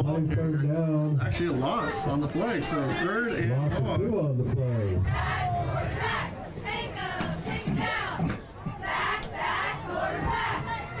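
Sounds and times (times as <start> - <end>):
football crowd shouting and cheering: 0.0 - 11.0.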